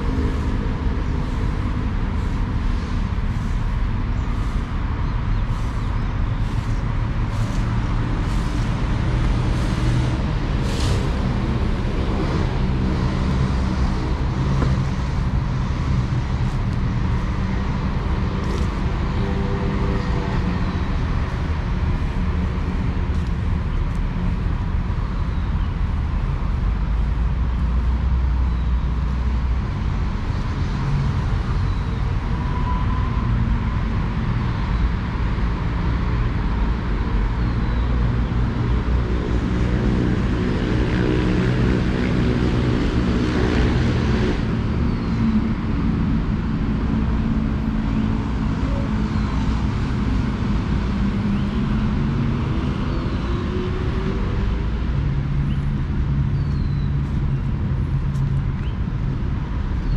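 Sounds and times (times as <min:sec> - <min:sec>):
road traffic rumble: 0:00.0 - 0:59.9.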